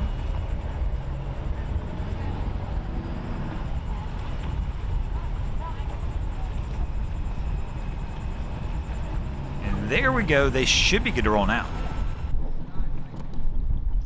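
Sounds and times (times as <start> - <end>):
faint outdoor background noise: 0.0 - 14.0.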